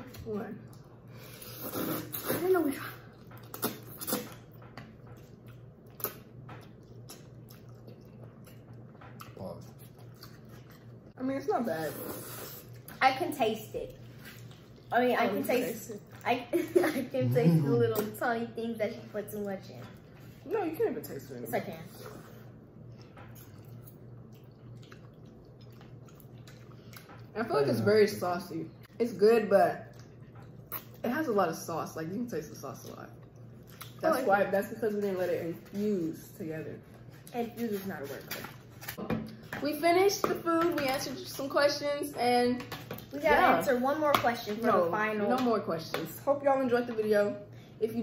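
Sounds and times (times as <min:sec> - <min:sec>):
people chewing spaghetti: 0:00.0 - 0:13.0, 0:13.8 - 0:16.3, 0:21.8 - 0:29.0, 0:29.8 - 0:31.1, 0:32.5 - 0:36.0
low steady hum: 0:00.0 - 0:48.0.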